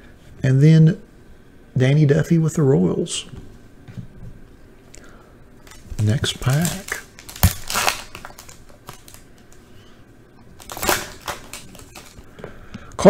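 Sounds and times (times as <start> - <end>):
foil wrapper ripping: 5.6 - 9.6, 10.6 - 12.2
foil wrapper crinkling: 5.6 - 9.9, 10.5 - 12.3.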